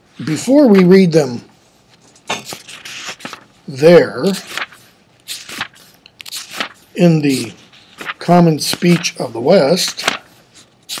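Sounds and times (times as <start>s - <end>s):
book pages rustling: 1.8s - 3.5s, 4.2s - 11.0s.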